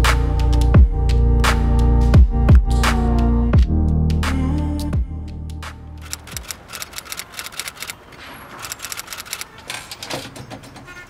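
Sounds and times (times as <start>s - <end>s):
keys typing: 6.0s - 10.3s.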